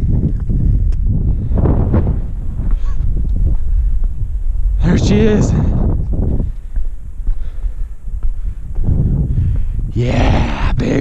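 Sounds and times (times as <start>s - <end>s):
wind buffeting microphone: 0.0s - 11.0s
heavy rough breathing: 5.5s - 10.8s.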